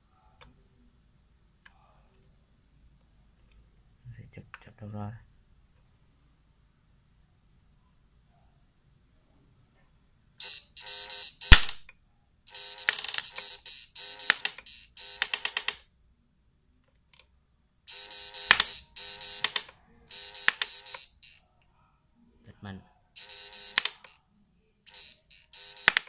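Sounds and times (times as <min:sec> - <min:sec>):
electric sparks buzzing and snapping: 0:11.4 - 0:11.9, 0:25.8 - 0:26.0.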